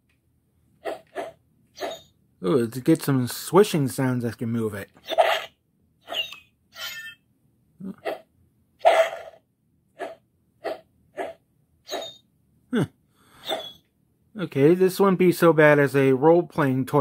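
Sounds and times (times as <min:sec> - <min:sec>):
toy electronic swishing sounds: 0:00.9 - 0:02.1.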